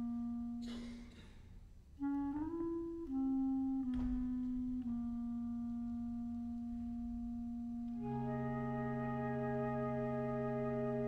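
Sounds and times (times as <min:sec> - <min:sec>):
woodwind holding low note: 0:02.0 - 0:11.0.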